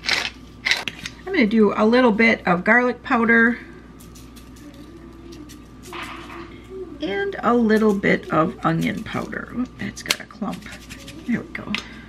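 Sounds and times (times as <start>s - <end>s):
faint low hum: 0.0s - 12.0s
spice shaker ticks and hiss: 4.0s - 6.2s, 10.5s - 11.3s.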